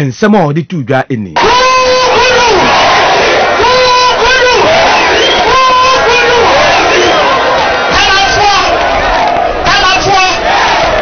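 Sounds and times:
crowd noise: 1.4 - 11.0.

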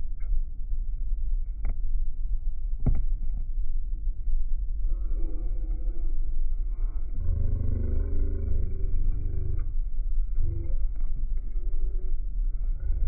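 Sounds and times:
low muffled pitched sound: 0.0 - 13.0
airliner cabin rumble: 4.9 - 13.0.

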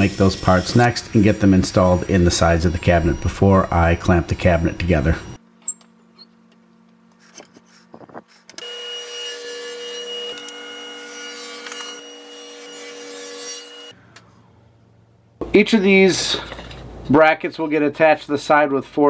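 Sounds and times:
table saw running: 0.0 - 5.4, 8.6 - 13.9.

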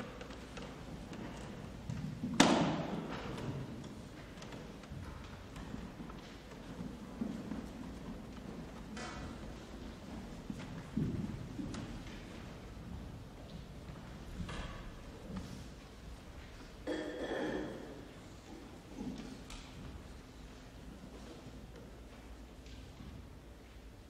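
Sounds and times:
footsteps: 0.0 - 16.8.

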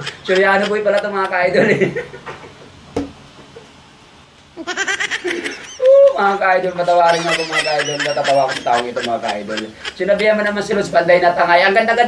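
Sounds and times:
man laughing high-pitched: 0.0 - 2.6, 4.6 - 10.2.

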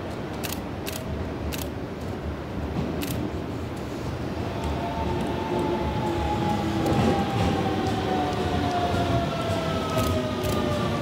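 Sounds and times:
sharp clicks of passing train: 0.0 - 11.0
train rumble and whine: 0.0 - 11.0.

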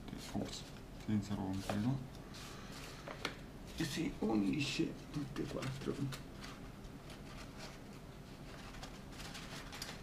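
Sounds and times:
paper rustling and crackling: 0.0 - 10.0.

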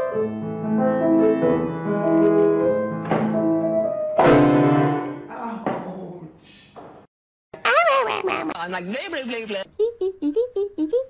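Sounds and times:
grand piano chords: 0.0 - 5.3.

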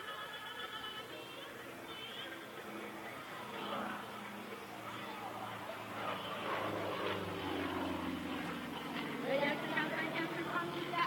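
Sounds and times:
radial engine and propeller drone: 0.0 - 11.0.

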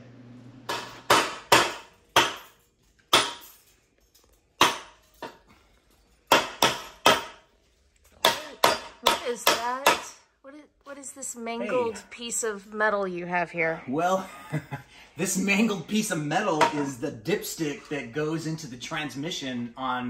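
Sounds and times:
hammer striking metal: 0.7 - 3.6, 4.6 - 5.4, 6.3 - 7.5, 8.2 - 10.2.

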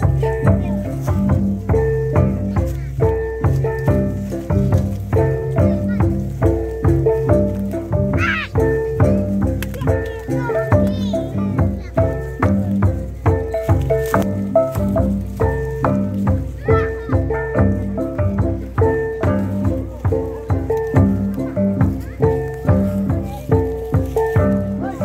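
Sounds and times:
gongs struck with mallets: 0.0 - 25.0
low drum strokes: 0.0 - 25.0
child crying: 8.1 - 12.0, 16.5 - 17.7.

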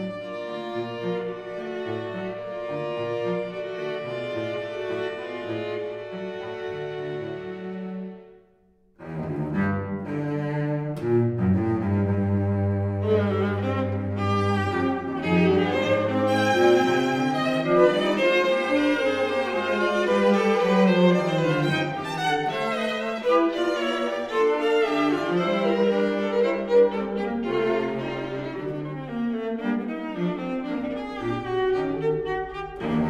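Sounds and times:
string trio chamber music: 0.0 - 33.0.

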